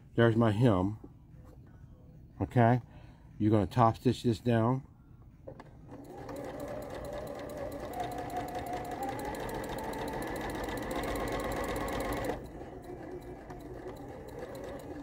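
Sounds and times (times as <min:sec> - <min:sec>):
sewing machine running: 0:05.9 - 0:15.0.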